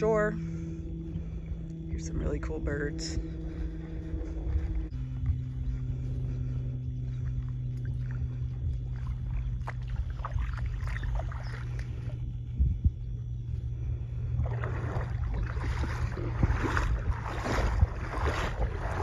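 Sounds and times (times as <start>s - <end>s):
small boat motor humming: 0.0s - 19.0s.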